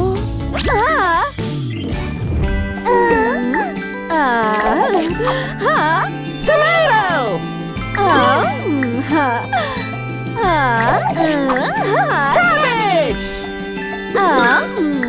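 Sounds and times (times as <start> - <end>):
children's cartoon music: 0.0 - 15.0
wordless cartoon voices swooping: 0.5 - 1.5, 10.4 - 13.3.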